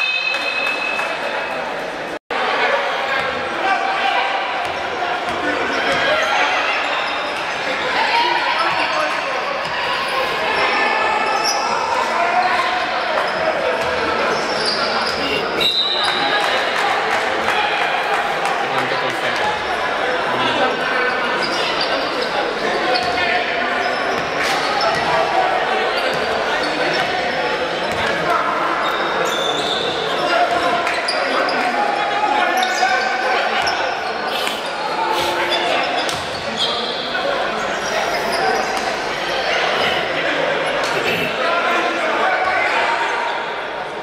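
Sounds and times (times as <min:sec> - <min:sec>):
hubbub of voices in gym: 0:00.0 - 0:44.0.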